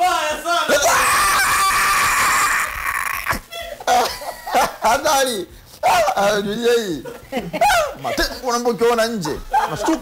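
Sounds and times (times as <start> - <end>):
men shouting: 0.0 - 3.4
long high scream: 0.8 - 3.4.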